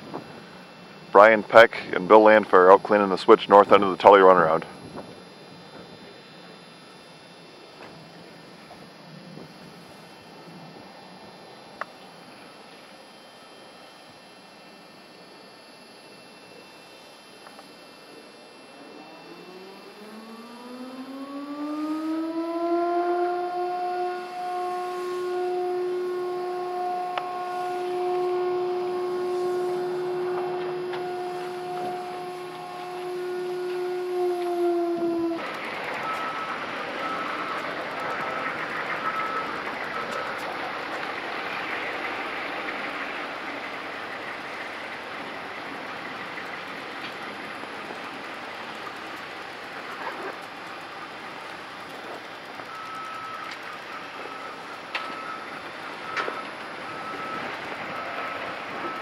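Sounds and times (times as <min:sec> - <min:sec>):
machine whine: 0:00.0 - 0:59.0.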